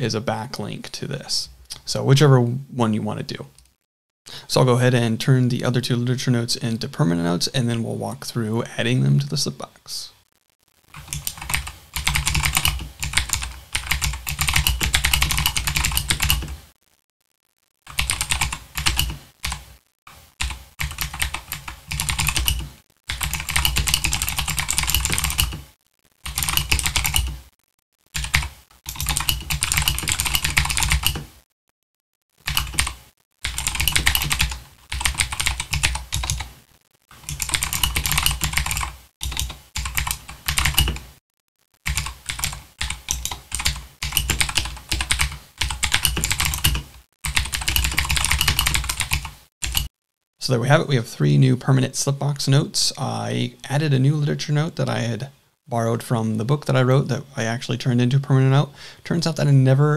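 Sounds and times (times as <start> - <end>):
typing on computer keyboard: 11.0 - 16.6, 17.9 - 19.6, 20.4 - 25.6, 26.3 - 27.4, 28.2 - 31.3, 32.4 - 36.5, 37.2 - 41.1, 41.9 - 49.9.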